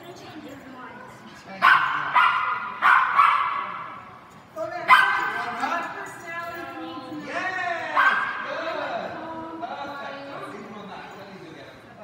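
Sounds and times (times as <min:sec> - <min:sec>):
small dog barking: 0:01.6 - 0:03.9, 0:04.9 - 0:05.3.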